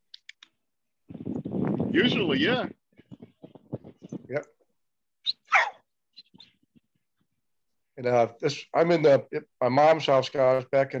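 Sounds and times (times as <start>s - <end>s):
dog barking over phone: 5.5s - 5.9s.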